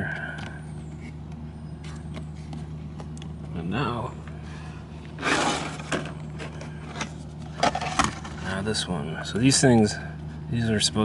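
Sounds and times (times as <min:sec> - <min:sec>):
low motor hum: 0:00.0 - 0:11.0.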